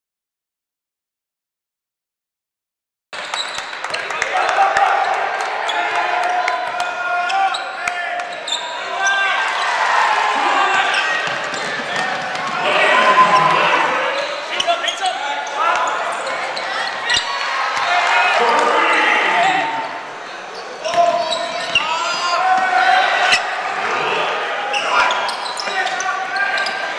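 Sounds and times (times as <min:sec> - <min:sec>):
hubbub of voices: 0:03.5 - 0:26.9.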